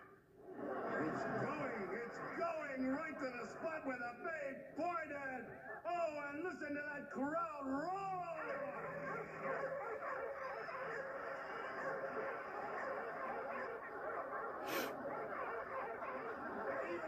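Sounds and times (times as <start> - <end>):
dogs barking and yelping: 8.2 - 17.0.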